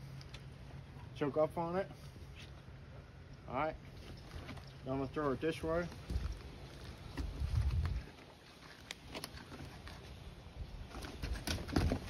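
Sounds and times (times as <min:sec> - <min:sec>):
cast net clicking and rustling: 0:06.0 - 0:10.2, 0:10.8 - 0:12.0.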